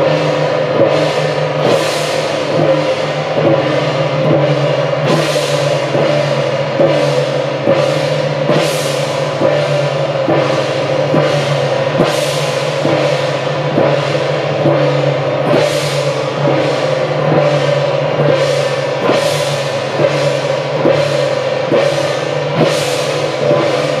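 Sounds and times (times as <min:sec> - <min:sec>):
gongs and cymbals beating: 0:00.0 - 0:24.0.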